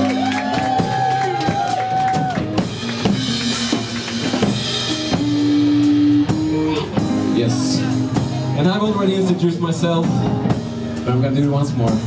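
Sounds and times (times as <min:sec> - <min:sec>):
rock drum kit: 0:00.0 - 0:12.0.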